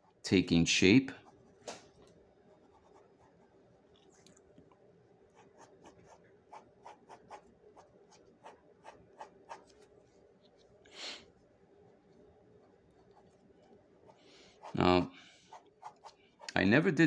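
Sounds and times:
pen scratching on paper: 0:02.5 - 0:03.6, 0:05.3 - 0:09.9, 0:12.6 - 0:16.5.

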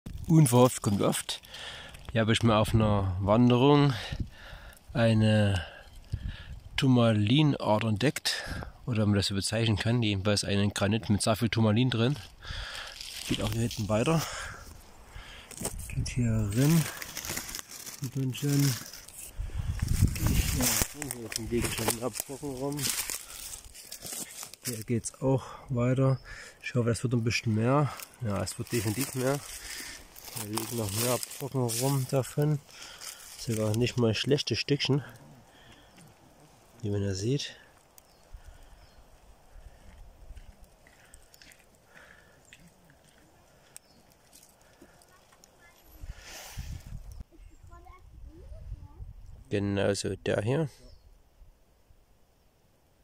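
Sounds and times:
rustling through undergrowth: 0:00.1 - 0:02.7, 0:12.0 - 0:47.2
man speaking: 0:00.3 - 0:01.4, 0:06.8 - 0:12.3, 0:13.3 - 0:14.6, 0:15.9 - 0:17.0, 0:18.0 - 0:18.9, 0:20.3 - 0:23.1, 0:24.6 - 0:29.6, 0:30.3 - 0:32.7, 0:33.4 - 0:35.5, 0:36.4 - 0:37.7, 0:49.5 - 0:51.0.

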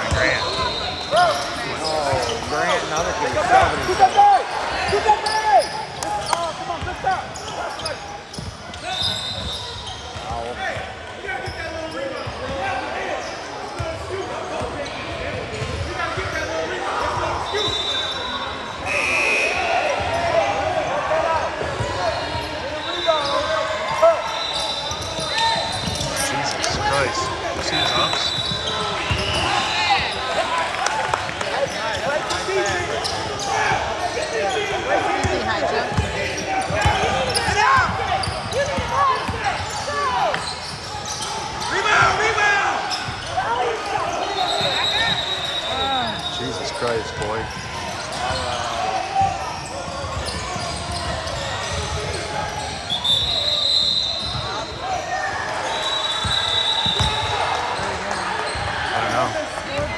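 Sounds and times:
many voices talking and calling: 0:00.0 - 0:59.9
basketball bouncing on court: 0:14.6 - 0:16.3, 0:35.2 - 0:39.8.

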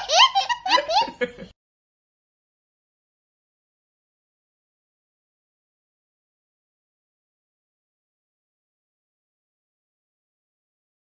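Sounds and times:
young child laughing: 0:00.0 - 0:01.5.

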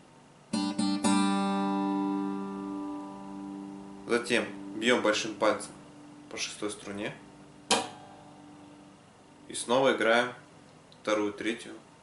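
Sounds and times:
guitar strings ringing: 0:00.5 - 0:09.0
acoustic guitar string strike: 0:07.6 - 0:08.9.

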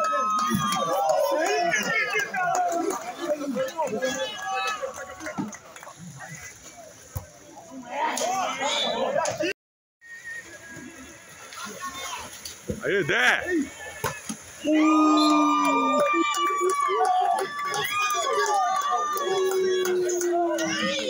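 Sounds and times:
players and spectators shouting: 0:00.0 - 0:06.6, 0:07.6 - 0:09.5, 0:10.8 - 0:21.0.

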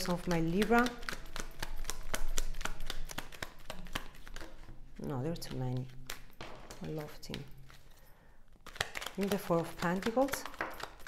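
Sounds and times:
cards being shuffled: 0:00.0 - 0:11.0.

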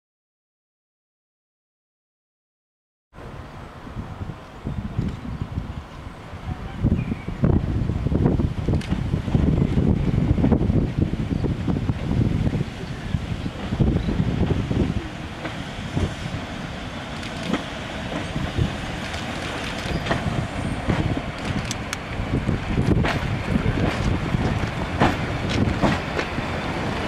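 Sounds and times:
diesel train engine: 0:03.2 - 0:27.0
wind buffeting microphone: 0:03.2 - 0:27.0
train wheels on rails: 0:04.2 - 0:27.0
sharp clicks: 0:19.0 - 0:20.2, 0:21.4 - 0:22.1.

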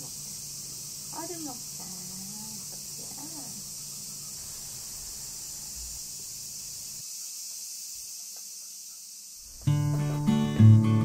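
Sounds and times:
high-pitched insect chorus: 0:00.0 - 0:10.8.

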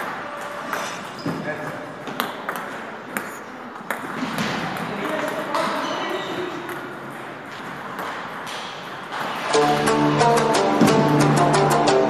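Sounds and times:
voices in gym hall: 0:00.0 - 0:11.3.

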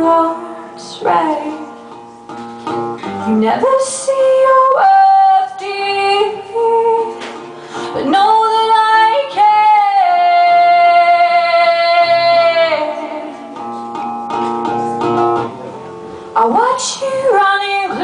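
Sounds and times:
woman singing: 0:00.0 - 0:01.9, 0:03.0 - 0:13.6, 0:16.4 - 0:18.0
acoustic guitar: 0:00.0 - 0:18.0.

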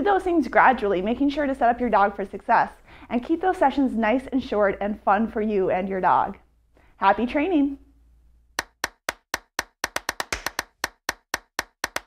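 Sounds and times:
sharp clap-like hits: 0:08.6 - 0:12.0.

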